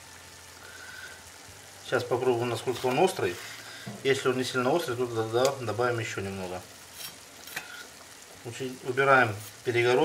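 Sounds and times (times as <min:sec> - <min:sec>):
meat sizzling in a pan: 0:00.0 - 0:10.0.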